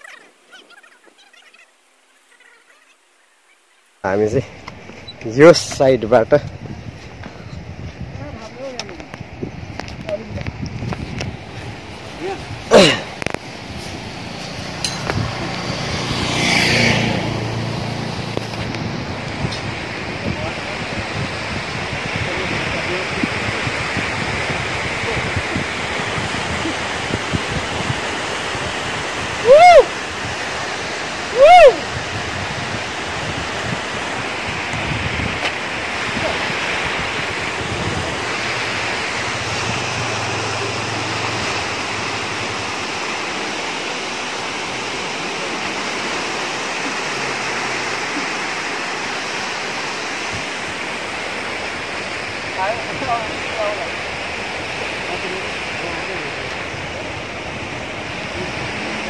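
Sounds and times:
river rushing: 0.0s - 59.0s
wind buffeting microphone: 4.2s - 43.6s.

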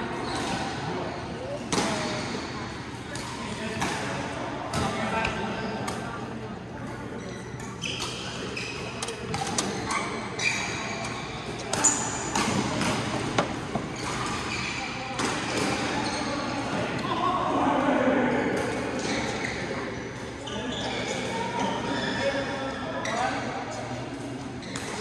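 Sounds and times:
voices in hall: 0.0s - 25.0s
sneakers squeaking on court: 6.8s - 16.8s.

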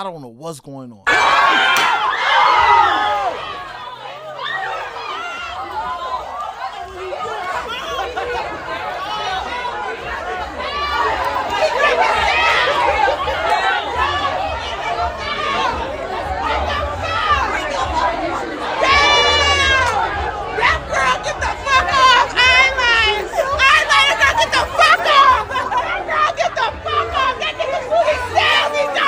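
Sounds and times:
people talking over one another: 0.0s - 29.0s.

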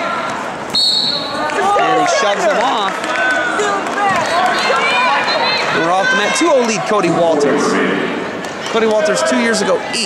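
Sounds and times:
referee's whistle blast: 0.8s - 1.3s.

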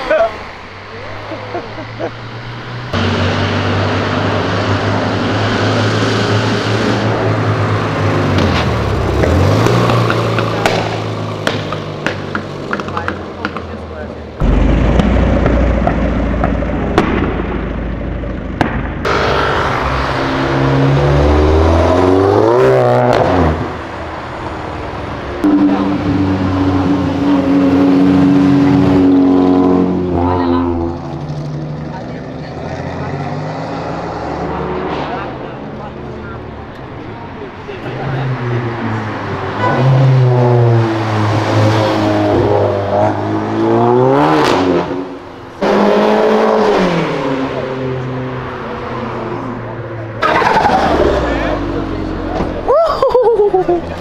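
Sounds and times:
cars revving and driving off: 0.0s - 54.0s.

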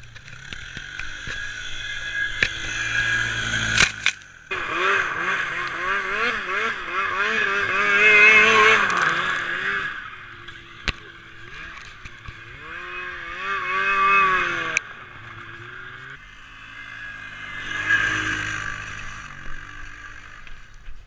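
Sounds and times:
snowmobile engine revving: 0.0s - 20.8s
quad engine running: 0.0s - 21.0s.

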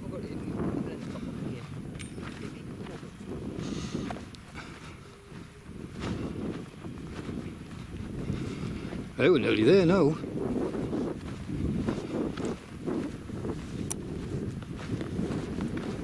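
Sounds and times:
footsteps on grass: 0.0s - 16.0s
wind buffeting microphone: 0.0s - 16.0s.

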